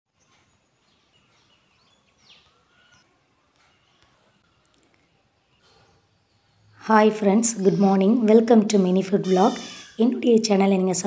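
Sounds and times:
distant bird chirps: 0.2 - 8.4, 9.1 - 10.2.

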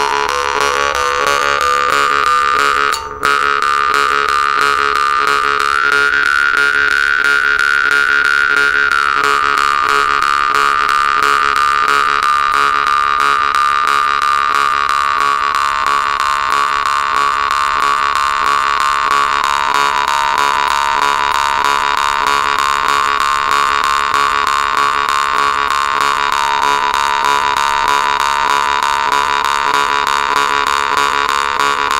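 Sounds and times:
jaw harp buzzing drone: 0.0 - 31.9.

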